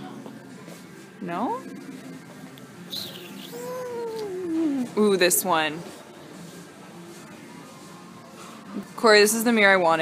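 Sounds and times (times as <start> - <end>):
person drawn-out ooh: 3.4 - 5.0.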